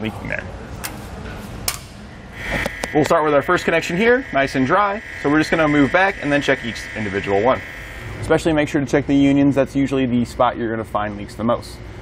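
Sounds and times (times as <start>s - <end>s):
electric pump whine: 2.3s - 8.9s.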